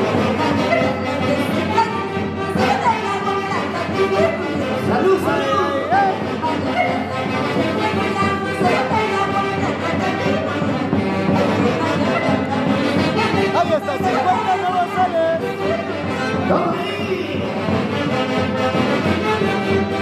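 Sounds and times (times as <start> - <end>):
band of saxophones and violin: 0.0 - 20.0.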